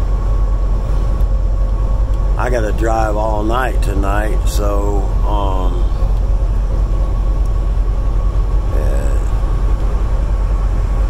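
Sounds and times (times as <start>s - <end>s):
diesel truck engine drone: 0.0s - 11.0s
low murmur: 0.0s - 11.0s.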